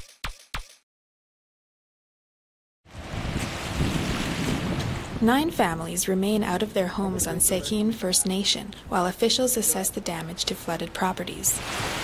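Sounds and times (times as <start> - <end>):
rushing rumble of floodwater: 2.9 - 8.0
wind buffeting microphone: 2.9 - 9.0
water lapping against rocks: 11.6 - 12.0.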